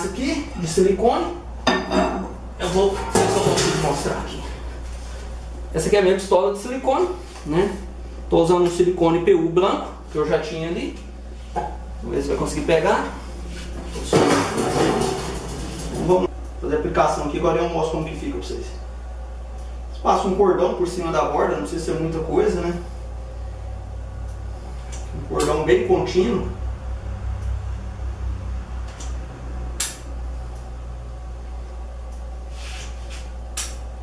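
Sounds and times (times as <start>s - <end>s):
steady low hum: 0.0s - 34.0s
metallic scrape and clatter: 14.0s - 16.3s.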